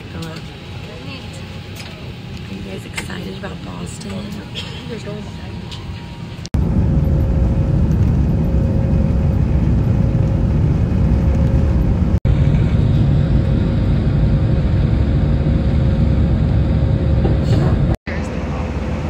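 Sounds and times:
jet engines rumbling in cabin: 0.0s - 19.0s.

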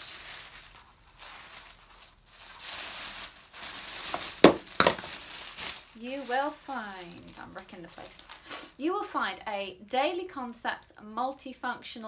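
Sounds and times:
tissue paper rustling: 0.0s - 8.5s
sharp knocks: 4.4s - 5.1s.

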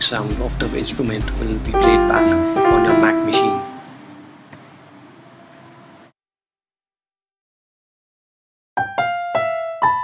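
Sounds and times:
piano notes ringing: 1.7s - 4.2s.

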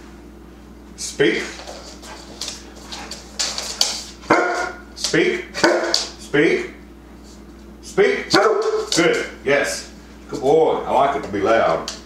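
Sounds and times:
dog barking: 4.3s - 4.8s, 5.6s - 6.1s, 8.3s - 9.0s.

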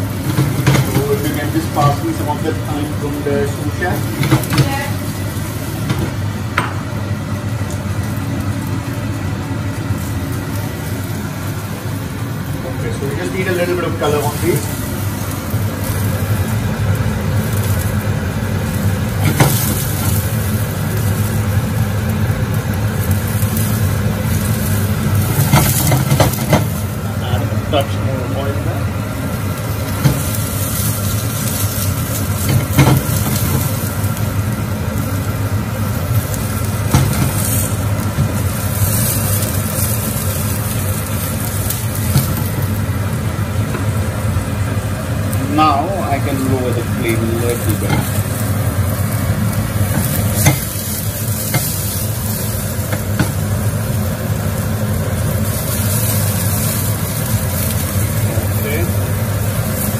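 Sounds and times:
mushrooms sizzling in a frying pan: 0.0s - 59.9s
steady low hum: 0.0s - 59.9s.

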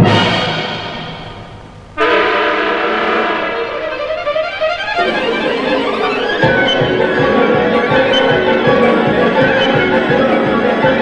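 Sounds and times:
orchestral film music chords: 0.0s - 11.0s.

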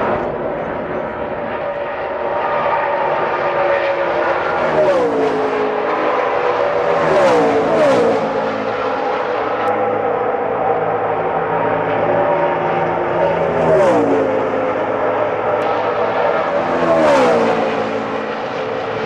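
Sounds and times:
cars passing by: 0.0s - 19.0s
race car engines at high revs: 0.0s - 19.0s.

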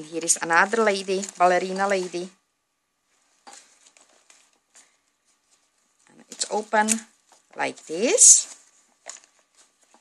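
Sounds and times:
paper page rustling: 0.1s - 2.4s, 3.1s - 10.0s.

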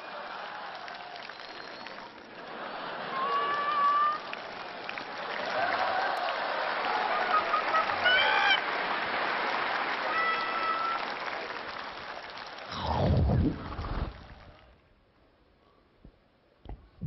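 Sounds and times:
audience applauding: 0.0s - 14.8s
long held shouts: 3.1s - 4.3s, 7.9s - 8.6s, 10.0s - 11.2s.

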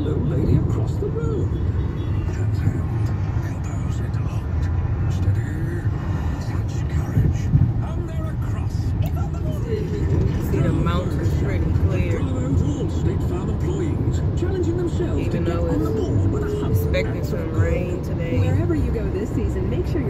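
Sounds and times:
car cabin road rumble: 0.0s - 20.0s
faint radio announcer voice: 0.0s - 20.0s.

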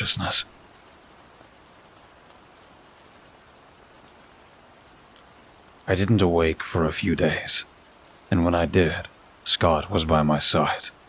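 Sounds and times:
steady rain patter: 0.0s - 11.0s.

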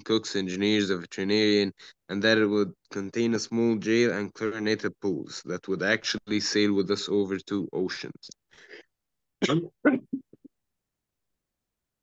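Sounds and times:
person clearing throat and coughing: 9.4s - 10.3s.

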